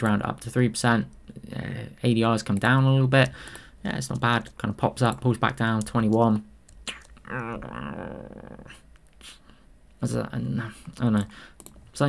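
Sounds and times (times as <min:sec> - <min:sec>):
breath: 0:03.3 - 0:03.8, 0:11.3 - 0:11.6
man humming: 0:06.9 - 0:09.4
faint clicks: 0:11.6 - 0:11.8.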